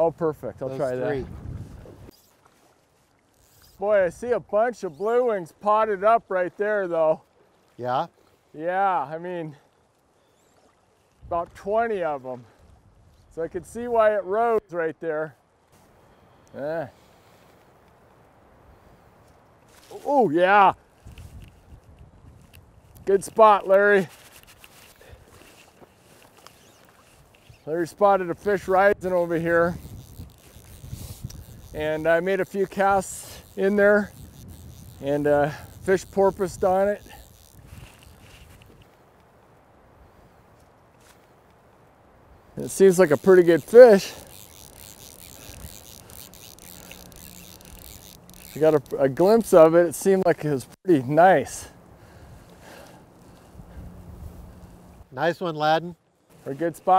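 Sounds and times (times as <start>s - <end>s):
river flowing: 23.4s - 55.2s.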